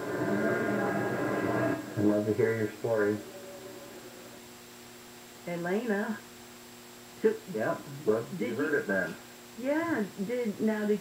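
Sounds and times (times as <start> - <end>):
muffled murmur: 0.0 - 4.5.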